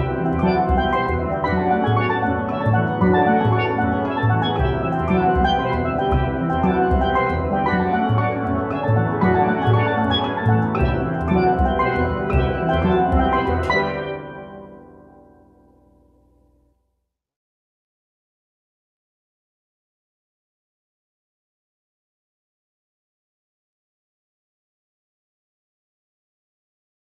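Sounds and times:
steel pan ensemble playing: 0.0 - 15.0.

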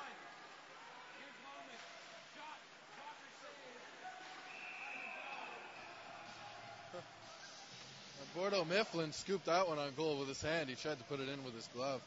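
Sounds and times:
referee whistle: 4.4 - 6.0.

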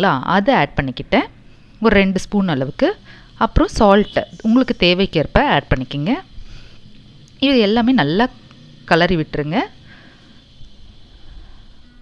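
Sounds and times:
low steady background noise: 0.0 - 12.0.

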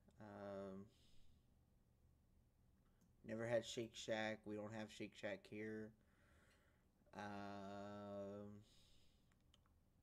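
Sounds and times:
man saying um: 0.2 - 0.9, 7.2 - 8.8.

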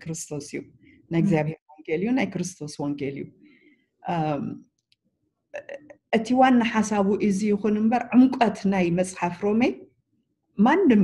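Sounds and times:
woman talking: 0.0 - 3.3, 4.1 - 4.6.

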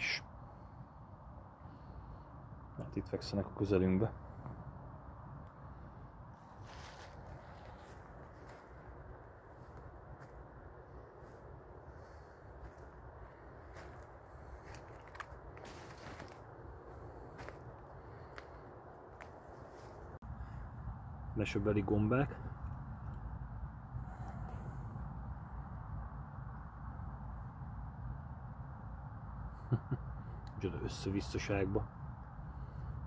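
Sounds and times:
low steady rumble: 0.0 - 33.0
footsteps through dry leaves: 6.4 - 8.8, 13.7 - 18.6.

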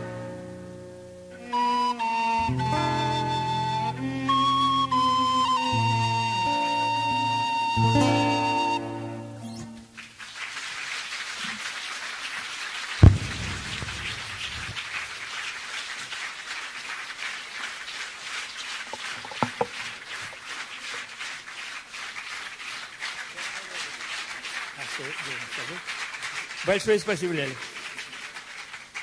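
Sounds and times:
song ending: 1.4 - 8.9
applause: 9.8 - 29.0
loud thump: 13.0 - 14.9
small knocks: 18.9 - 20.4.

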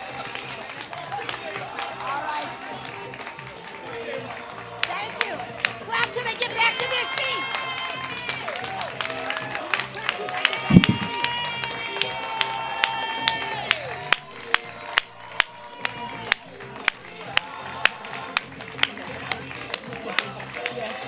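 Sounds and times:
crowd clapping along: 0.0 - 21.0
hand clapping close up: 4.4 - 21.0
voices holding long notes: 10.3 - 18.9.

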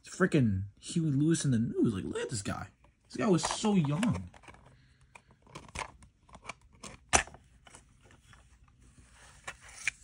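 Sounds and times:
plastic clicks and rattles: 3.4 - 7.3.

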